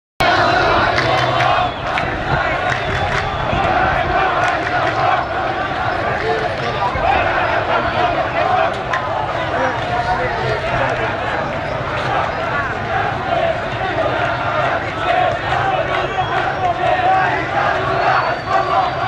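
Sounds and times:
crowd of protesters shouting: 0:00.2 - 0:19.0.

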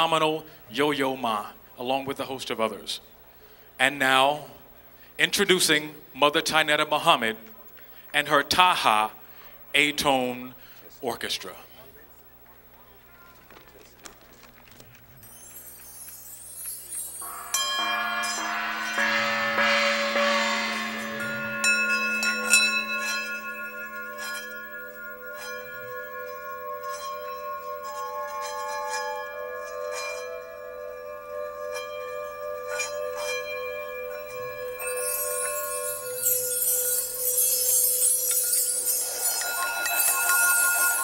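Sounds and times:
steady ringing tones: 0:15.2 - 0:41.0
struck bells and chimes: 0:15.2 - 0:41.0.

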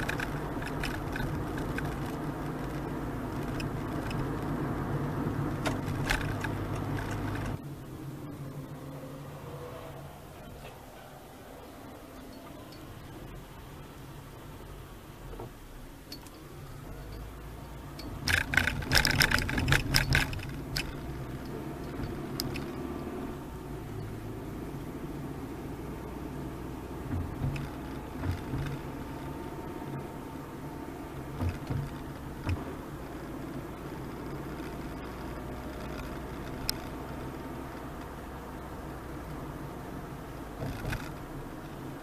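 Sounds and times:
low thumps from road bumps: 0:00.0 - 0:07.6, 0:18.1 - 0:23.1, 0:26.8 - 0:29.7, 0:31.2 - 0:38.1, 0:40.5 - 0:41.7
tyre and road rumble: 0:00.0 - 0:42.0.

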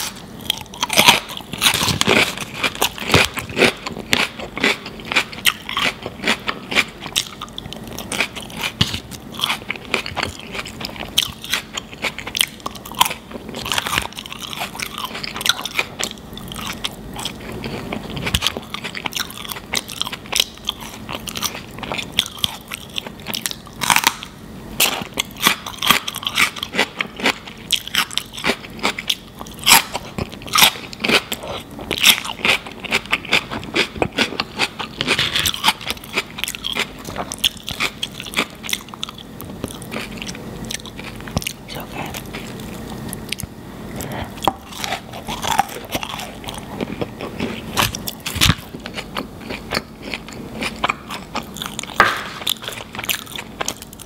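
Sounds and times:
wet chewing: 0:00.0 - 0:24.2, 0:24.8 - 0:54.0
crisp crunches of food: 0:00.0 - 0:54.0.

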